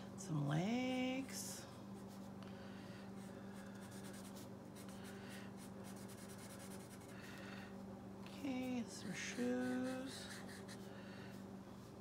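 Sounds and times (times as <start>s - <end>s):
steady low hum: 0.0s - 12.0s
marker scratching on paper: 3.8s - 5.0s, 5.6s - 7.1s, 9.6s - 10.9s.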